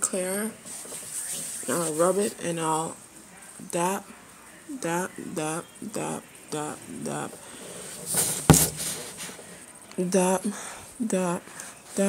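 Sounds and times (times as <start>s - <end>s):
microphone handling rustle: 7.9s - 9.5s
sharp knock on microphone: 8.5s - 9.0s.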